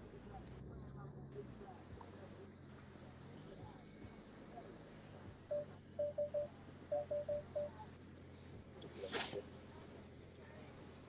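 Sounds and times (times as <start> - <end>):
low steady hum: 0.0 - 11.0
short electronic beeps: 5.5 - 7.8.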